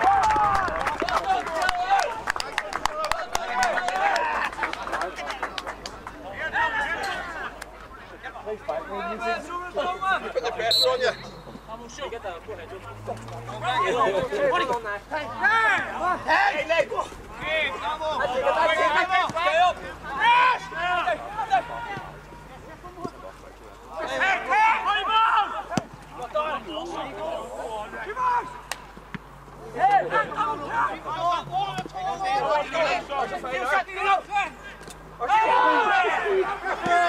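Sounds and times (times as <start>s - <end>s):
men shouting: 35.2s - 37.0s.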